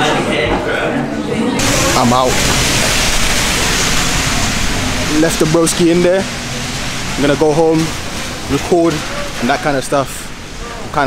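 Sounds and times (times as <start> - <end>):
steady rushing noise: 1.6 - 11.0.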